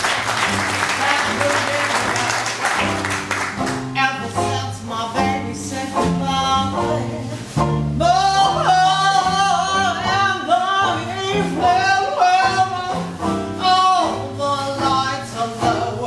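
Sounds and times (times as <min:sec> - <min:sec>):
dixieland jazz band: 0:00.0 - 0:16.0
woman singing jazz ballad: 0:00.7 - 0:16.0.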